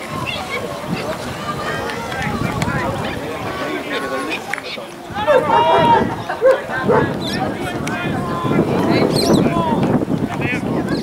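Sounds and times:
players shouting: 0:00.0 - 0:10.7.

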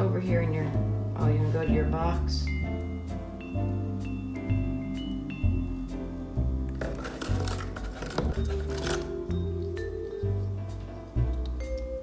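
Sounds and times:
background music with low bass: 0:00.0 - 0:12.0
parrot tearing cardboard: 0:06.8 - 0:09.2.

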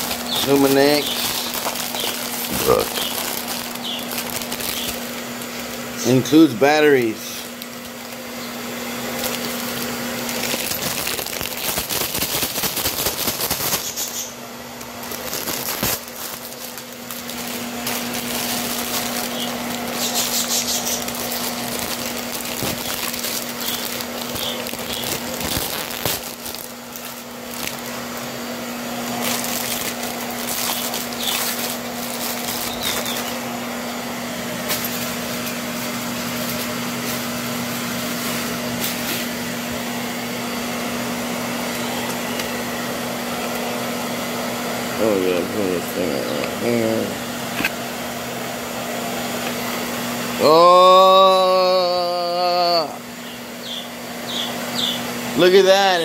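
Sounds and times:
plastic packaging crinkling: 0:00.0 - 0:33.8, 0:34.4 - 0:39.9
mechanical hum with air noise: 0:00.0 - 0:56.0.

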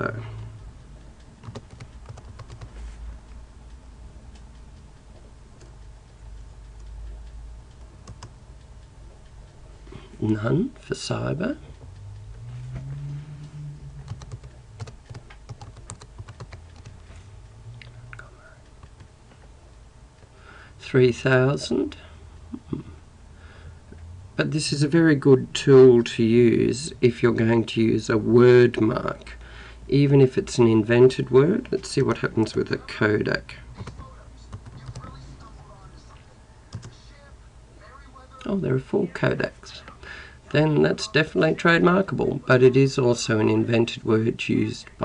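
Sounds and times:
low steady hum: 0:00.0 - 0:45.0
keyboard typing: 0:01.4 - 0:02.8, 0:08.0 - 0:08.4, 0:14.0 - 0:17.1, 0:18.8 - 0:19.1, 0:33.7 - 0:35.5, 0:36.7 - 0:37.0.

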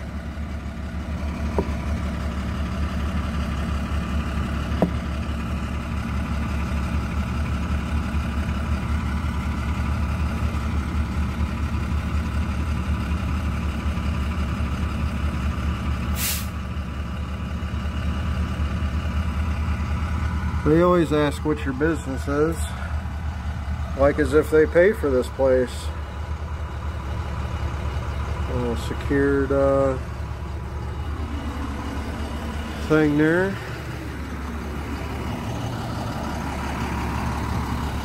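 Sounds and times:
engine idling: 0:00.0 - 0:38.0
hiss of released air: 0:16.2 - 0:16.6.

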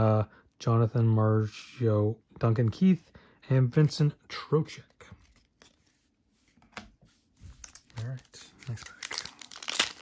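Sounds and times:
trading cards handled: 0:04.8 - 0:10.0.

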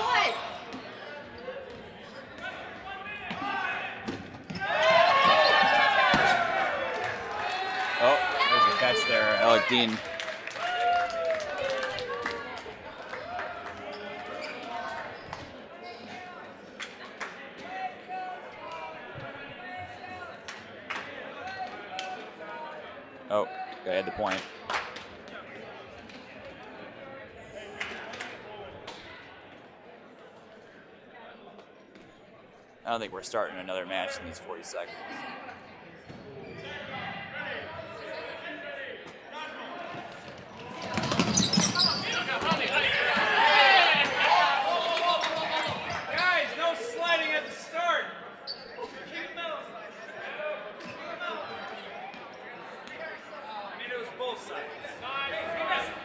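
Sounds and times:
players shouting: 0:02.6 - 0:10.0, 0:41.7 - 0:48.1.

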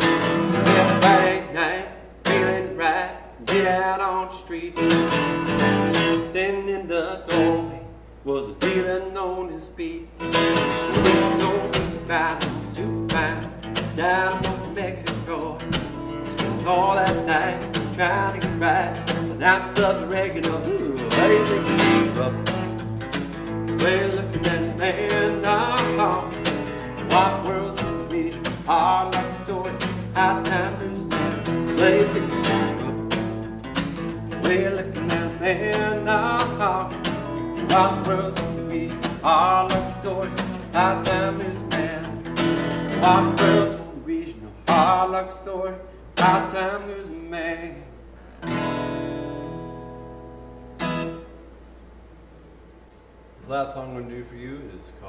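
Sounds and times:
man singing: 0:00.0 - 0:48.0
strummed acoustic guitar: 0:00.0 - 0:51.6.

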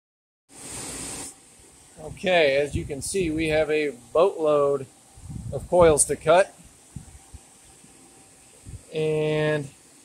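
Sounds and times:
faint background hiss: 0:00.5 - 0:10.0.

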